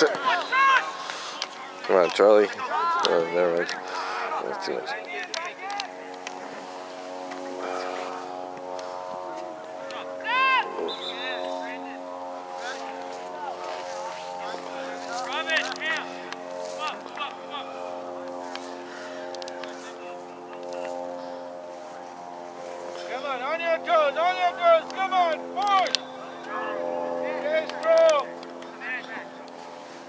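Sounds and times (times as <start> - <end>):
players shouting: 0.0 - 20.9, 23.0 - 29.3
motor drone: 0.0 - 30.0.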